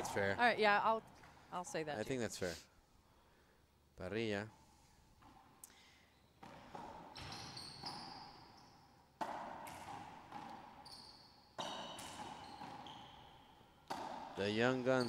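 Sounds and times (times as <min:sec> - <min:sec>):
racquetball hits echoing: 0:05.2 - 0:05.6, 0:06.4 - 0:15.0.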